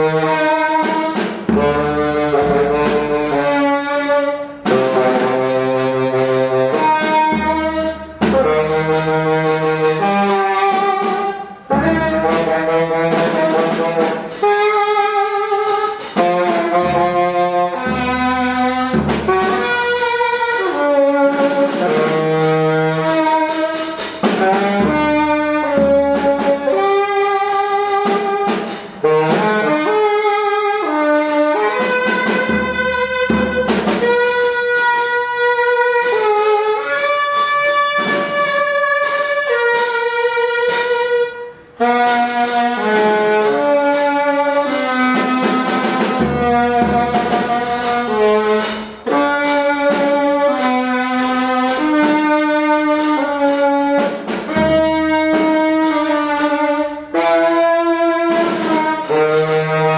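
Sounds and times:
drums and cymbals: 0:00.0 - 0:59.9
tenor saxophone improvising: 0:00.0 - 0:59.9.

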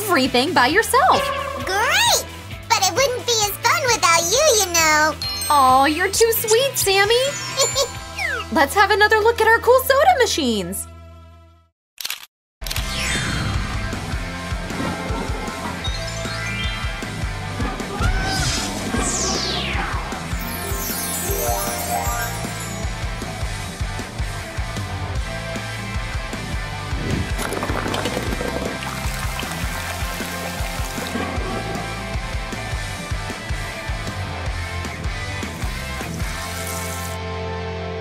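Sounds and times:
background music: 0:00.0 - 0:11.7, 0:13.0 - 0:38.0
falling swoosh: 0:17.8 - 0:22.8.

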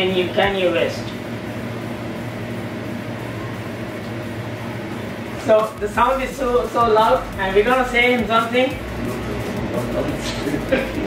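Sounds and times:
steady hum and hiss: 0:00.0 - 0:11.0.

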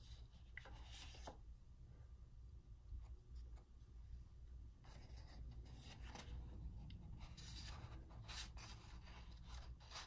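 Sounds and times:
paper rustling: 0:00.0 - 0:01.4, 0:07.2 - 0:10.0.

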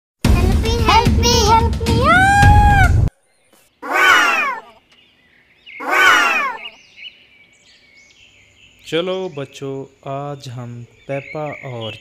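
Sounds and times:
faint high chirping: 0:03.2 - 0:12.0
drawn-out falling animal calls: 0:03.8 - 0:04.8, 0:05.8 - 0:06.8.

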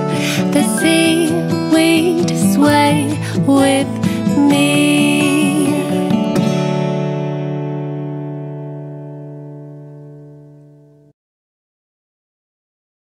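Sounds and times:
acoustic guitar strum: 0:00.0 - 0:11.1.

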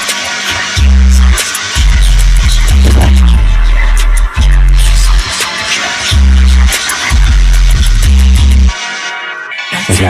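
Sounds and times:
electronic music: 0:00.0 - 0:10.0
deep bass notes: 0:02.0 - 0:05.3.

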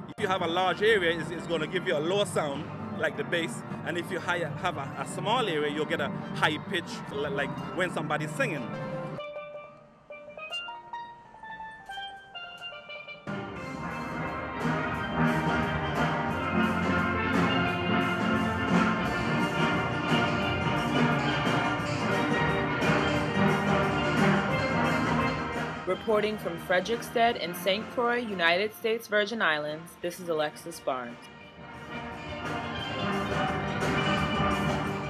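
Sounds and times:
steel band playing: 0:00.0 - 0:35.0.

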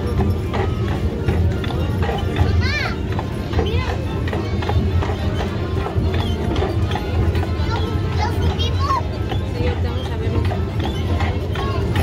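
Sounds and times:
crowd voices: 0:00.0 - 0:12.0
horse hooves on brick: 0:00.0 - 0:12.0.

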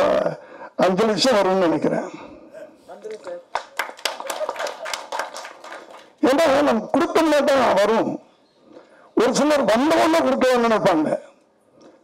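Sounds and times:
audience applause: 0:03.5 - 0:06.2.

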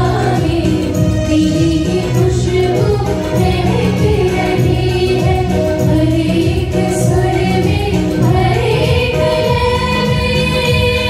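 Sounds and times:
live band playing: 0:00.0 - 0:11.0
group singing in chorus: 0:01.9 - 0:11.0.

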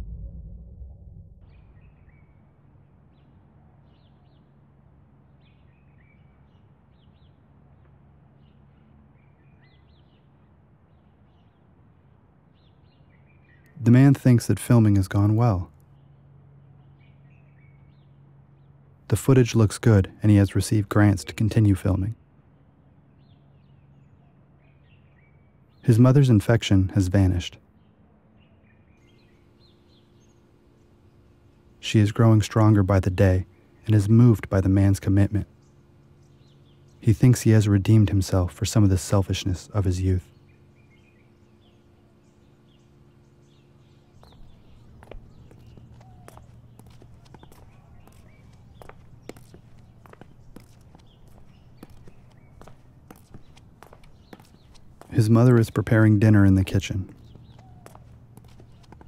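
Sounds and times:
distant bird chirps: 0:00.0 - 0:59.0
steady low hum: 0:00.0 - 0:59.0
man narrating: 0:13.8 - 0:15.7, 0:19.1 - 0:22.2, 0:25.9 - 0:27.6, 0:31.8 - 0:35.5, 0:37.0 - 0:40.3, 0:55.1 - 0:57.2
slipper footsteps on concrete: 0:43.7 - 0:59.0.

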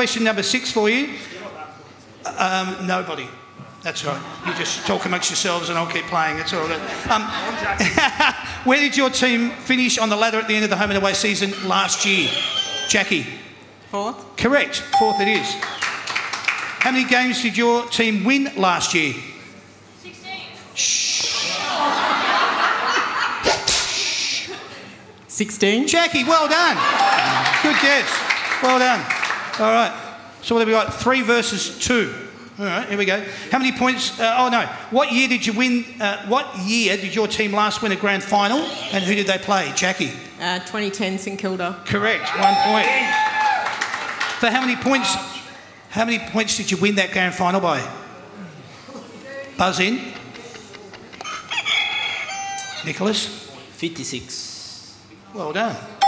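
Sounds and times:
audience laughter: 0:04.0 - 0:05.4, 0:06.6 - 0:08.7, 0:21.4 - 0:23.7, 0:26.4 - 0:28.3
buzzer rooster crow sound: 0:11.6 - 0:12.9, 0:42.4 - 0:43.1
audience clapping: 0:15.4 - 0:17.2, 0:27.0 - 0:29.8, 0:43.0 - 0:44.8.

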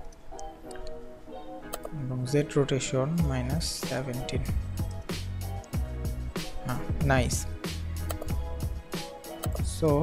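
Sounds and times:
soft background music: 0:00.0 - 0:10.0
mouse clicks: 0:01.7 - 0:01.9, 0:08.0 - 0:08.4.

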